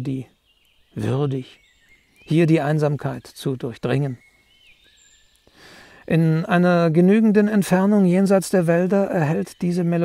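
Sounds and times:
birds chirping and whistling: 0:00.0 - 0:10.0
woodland ambience: 0:00.0 - 0:10.0
man breathing in: 0:05.4 - 0:06.1.

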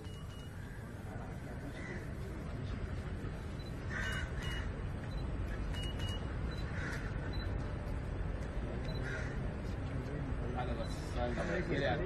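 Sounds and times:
low traffic rumble: 0:00.0 - 0:12.0
short high beeps: 0:03.6 - 0:06.7.

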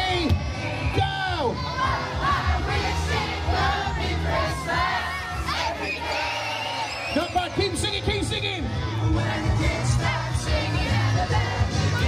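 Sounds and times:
crowd singing and shouting: 0:00.0 - 0:12.0
song over loudspeakers: 0:00.0 - 0:12.0.

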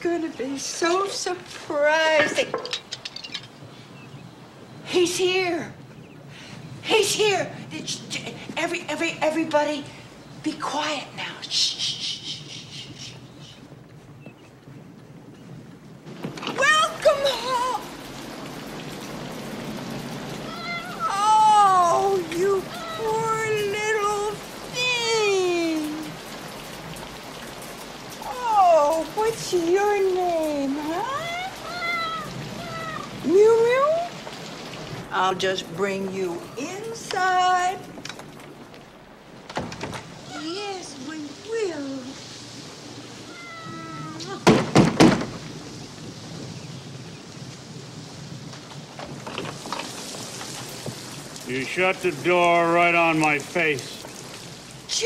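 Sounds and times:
rain hiss: 0:00.0 - 0:55.0
cat meowing: 0:20.5 - 0:21.2, 0:31.1 - 0:33.2, 0:43.2 - 0:44.4
knocks on a door: 0:44.4 - 0:45.4.

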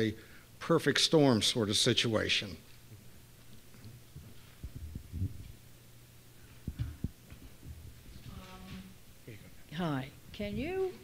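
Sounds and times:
low electrical hum: 0:00.0 - 0:11.0
soft low thuds: 0:04.0 - 0:05.6, 0:06.5 - 0:09.0.

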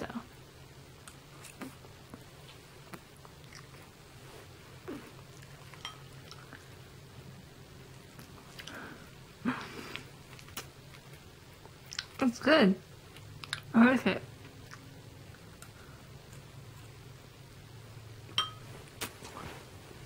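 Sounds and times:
person chewing: 0:02.9 - 0:04.0, 0:04.8 - 0:06.8, 0:07.9 - 0:08.9, 0:09.6 - 0:12.2, 0:13.1 - 0:13.7.

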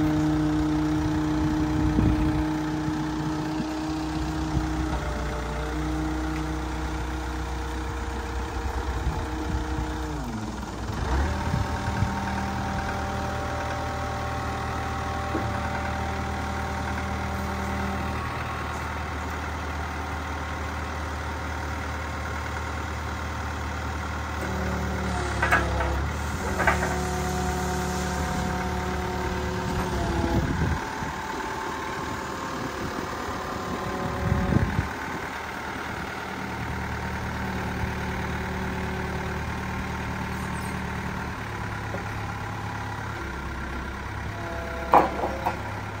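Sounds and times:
forklift diesel engine running: 0:00.0 - 0:46.0
short clunks: 0:24.4 - 0:27.3, 0:44.6 - 0:45.9.

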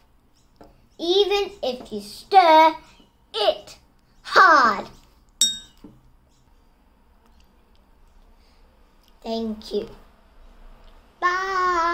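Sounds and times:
glass mug clinking: 0:05.4 - 0:05.8.

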